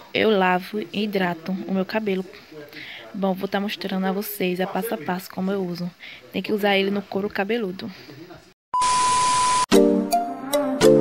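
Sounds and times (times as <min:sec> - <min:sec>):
steady beep: 0:08.8 - 0:09.7
music with plucked notes: 0:09.7 - 0:11.0.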